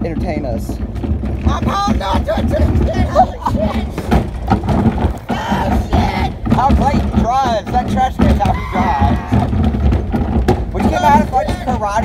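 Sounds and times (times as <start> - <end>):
pickup truck rolling on gravel: 0.0 - 12.0
trash can dragged on gravel: 0.0 - 12.0
shouting voices: 1.4 - 9.7, 10.7 - 12.0.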